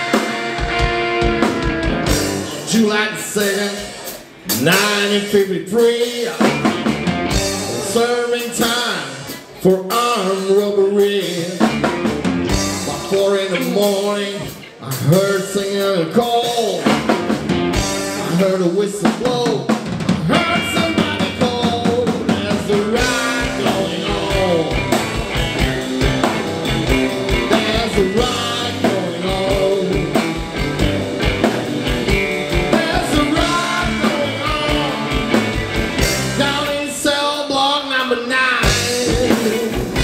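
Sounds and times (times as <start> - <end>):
electric bass: 0.0 - 2.9, 6.3 - 8.1, 11.4 - 14.6, 16.7 - 18.6, 20.0 - 37.0, 38.6 - 40.0
drum kit beat: 0.0 - 15.6, 16.3 - 37.1, 38.6 - 40.0
electric guitars: 0.0 - 40.0.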